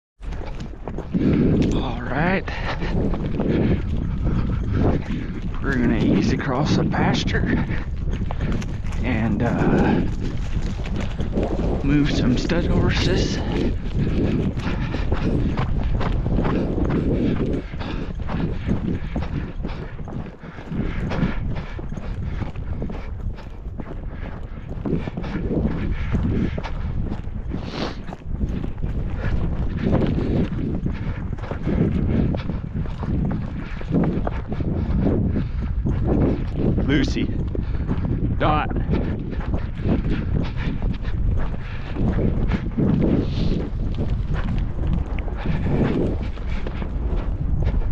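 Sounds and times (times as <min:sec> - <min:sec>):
horse hooves on dirt: 0:00.2 - 0:47.9
wind buffeting microphone: 0:00.2 - 0:47.9.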